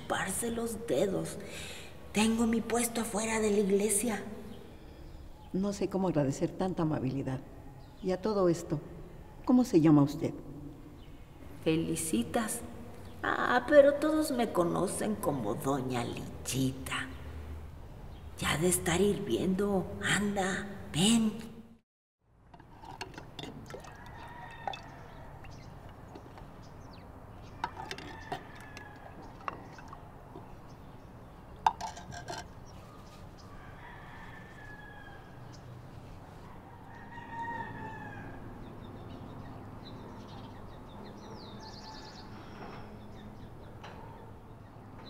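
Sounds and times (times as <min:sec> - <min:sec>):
birds: 0:22.9 - 0:45.0
roosters crowing: 0:23.8 - 0:25.8, 0:27.4 - 0:29.8, 0:33.4 - 0:38.9, 0:41.3 - 0:43.0
ceramic clinks of clay cups: 0:31.6 - 0:32.6.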